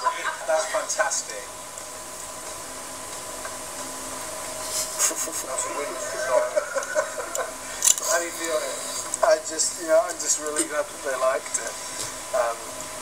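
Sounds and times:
steady hiss: 0:00.0 - 0:13.0
voices talking quietly on television: 0:00.0 - 0:13.0.

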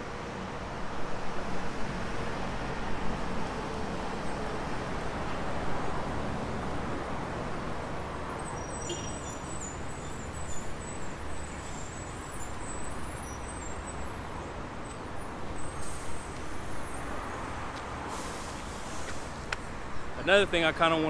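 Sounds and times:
city road traffic: 0:00.0 - 0:21.0.

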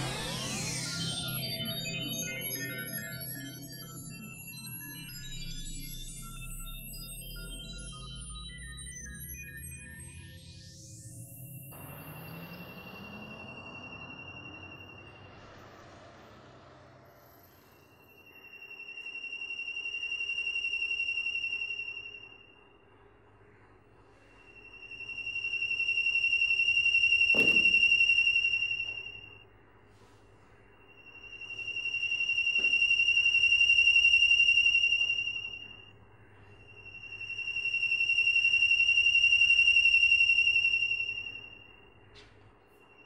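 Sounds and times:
high steady electronic tone: 0:00.0 - 0:23.6, 0:24.2 - 0:29.6, 0:30.4 - 0:43.0
sharp knock: 0:27.3 - 0:27.8.

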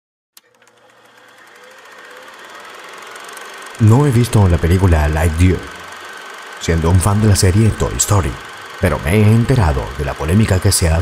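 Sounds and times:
film projector clicking: 0:00.4 - 0:11.0.

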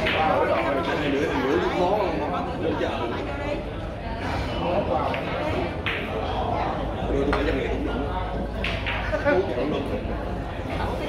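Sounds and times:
indistinct chatter in large hall: 0:00.0 - 0:11.0.

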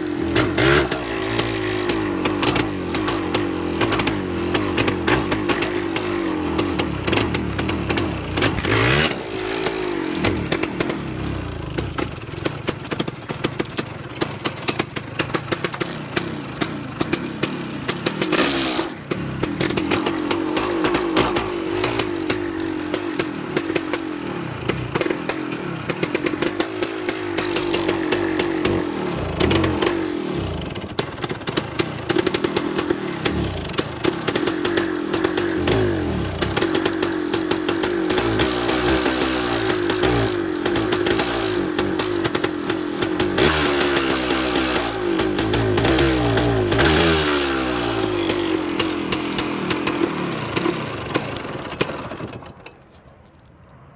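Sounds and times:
two-stroke engine running: 0:00.0 - 0:52.8.

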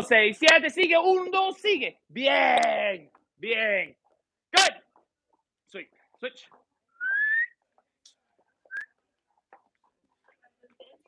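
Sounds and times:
person whistling: 0:06.9 - 0:07.6, 0:08.7 - 0:08.9.

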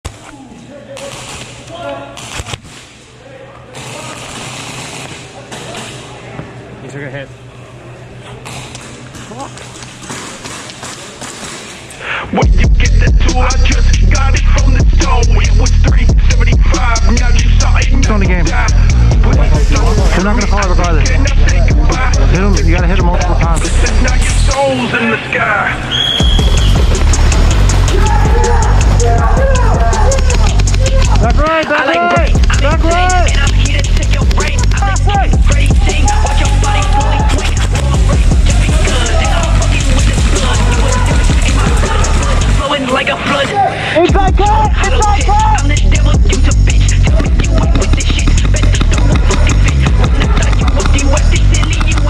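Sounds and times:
noisy background: 0:00.0 - 0:52.0
deep bass: 0:12.4 - 0:24.6, 0:26.2 - 0:31.5, 0:32.2 - 0:42.7, 0:44.1 - 0:52.0
ticking beat: 0:12.4 - 0:24.6, 0:26.2 - 0:31.5, 0:32.1 - 0:42.7, 0:44.1 - 0:52.0
voices calling out: 0:16.7 - 0:52.0.

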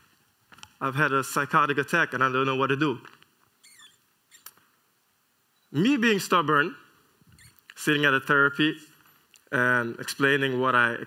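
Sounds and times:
faint high squeak: 0:03.6 - 0:04.6, 0:07.3 - 0:07.6.

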